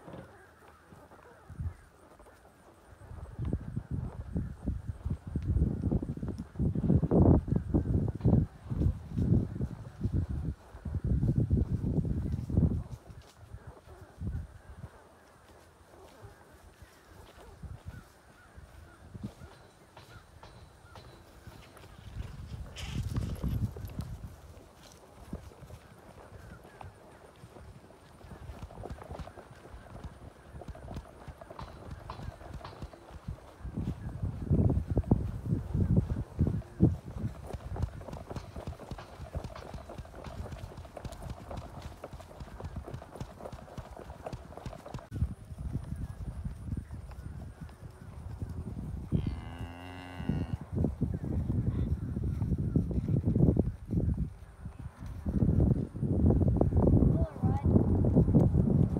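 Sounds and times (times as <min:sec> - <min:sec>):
horse hoofbeats walking: 0:00.0 - 0:49.2
cow mooing: 0:49.1 - 0:50.6.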